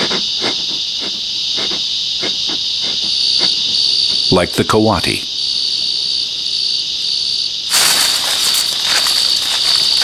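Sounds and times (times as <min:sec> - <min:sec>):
insect chorus: 0:00.0 - 0:10.0
dry rustling scratchy noise: 0:07.7 - 0:10.0.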